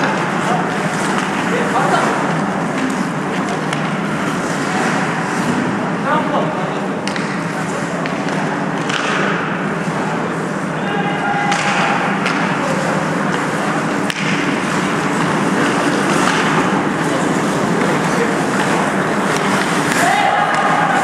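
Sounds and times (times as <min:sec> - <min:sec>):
sticks and puck clattering: 0:00.0 - 0:05.7, 0:07.0 - 0:10.2, 0:11.3 - 0:21.0
skates scraping on ice: 0:00.1 - 0:05.8, 0:12.3 - 0:21.0.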